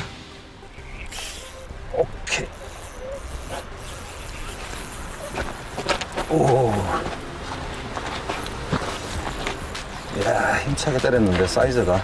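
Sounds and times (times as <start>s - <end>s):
spinning reel being cranked: 1.0s - 7.0s, 8.4s - 12.0s.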